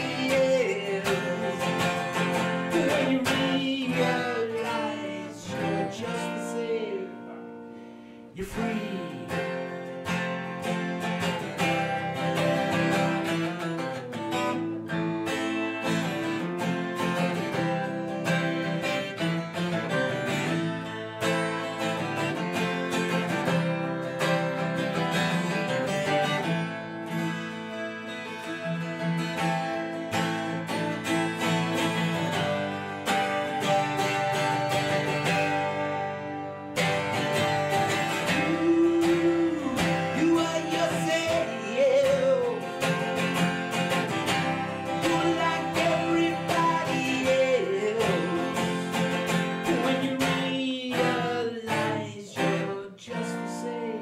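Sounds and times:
twelve-string acoustic guitar strumming: 0:00.0 - 0:54.0.

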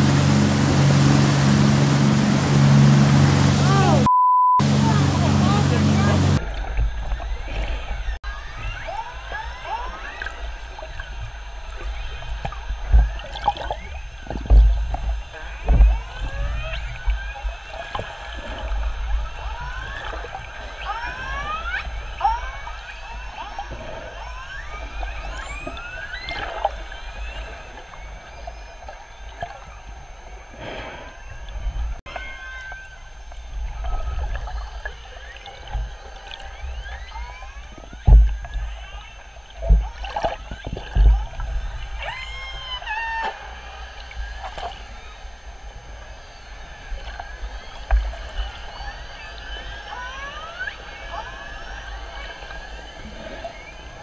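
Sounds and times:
killer whale whistles and calls: 0:07.2 - 0:45.4, 0:46.1 - 0:54.0.

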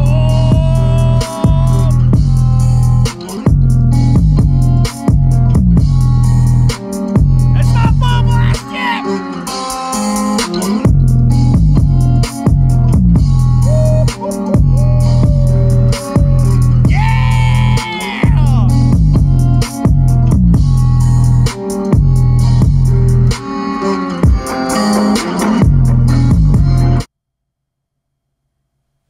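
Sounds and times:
bass-heavy music on a speaker: 0:00.0 - 0:27.1.

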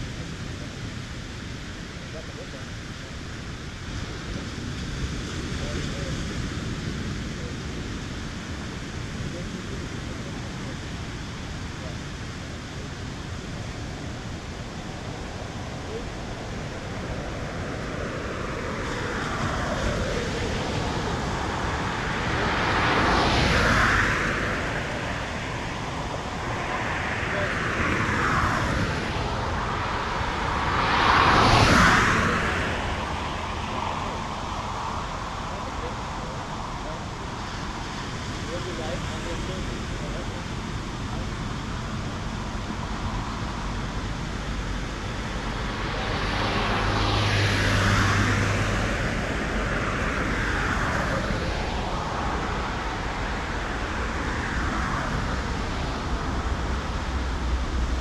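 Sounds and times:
passing traffic: 0:00.0 - 0:58.0
cars driving past: 0:02.1 - 0:58.0.

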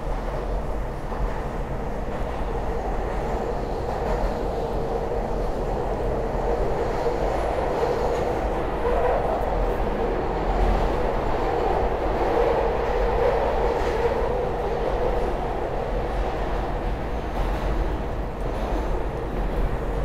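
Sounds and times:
wheels rumbling on rail: 0:00.0 - 0:20.0.

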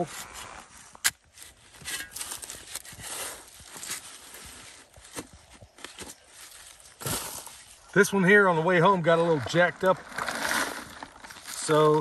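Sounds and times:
shovel digging in soil and leaves: 0:00.0 - 0:07.9.

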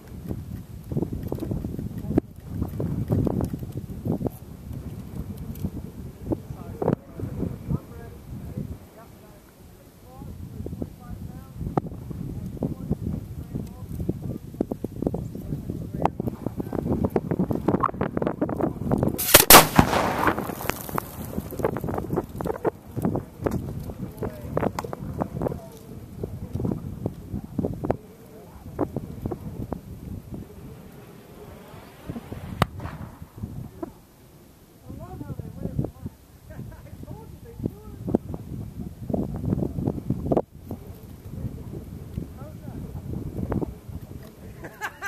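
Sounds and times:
wind buffeting microphone: 0:00.0 - 0:45.0
shell hissing: 0:19.2 - 0:22.0, 0:29.8 - 0:33.9
firework mortar bang: 0:19.2 - 0:22.2, 0:30.8 - 0:34.0.

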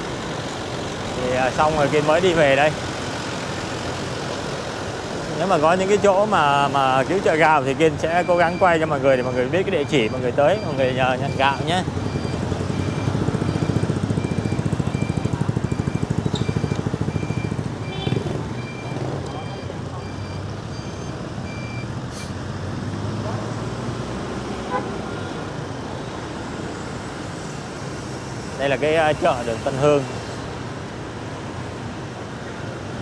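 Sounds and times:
traffic rumble: 0:00.0 - 0:33.0.

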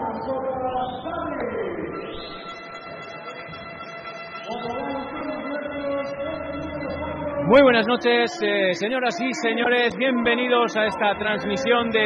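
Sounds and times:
music over public address: 0:00.0 - 0:12.0.

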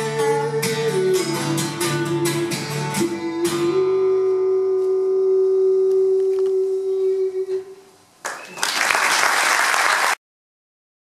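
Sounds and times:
man singing long note: 0:00.0 - 0:07.9.

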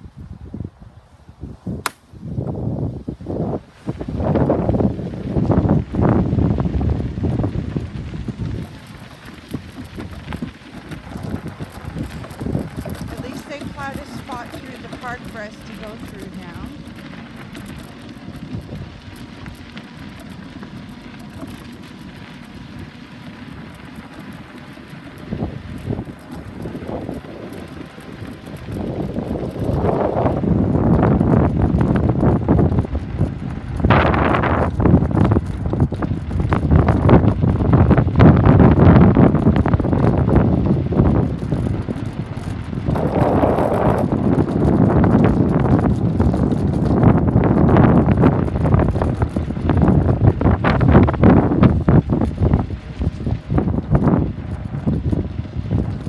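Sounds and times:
low steady rumble: 0:00.0 - 0:56.0
wind buffeting microphone: 0:00.0 - 0:56.0.

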